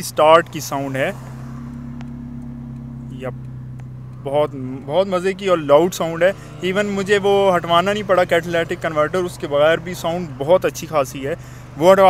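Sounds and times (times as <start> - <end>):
car engine idling loudly: 0.0 - 12.0.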